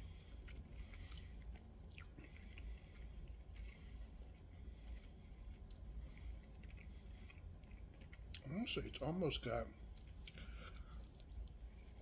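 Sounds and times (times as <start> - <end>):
chewing with soft clicks: 0.0 - 12.0
low steady hum: 0.0 - 12.0.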